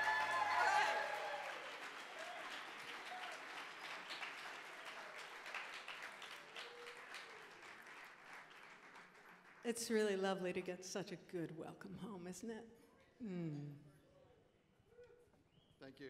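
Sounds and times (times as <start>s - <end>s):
audience applauding: 0.0s - 9.9s.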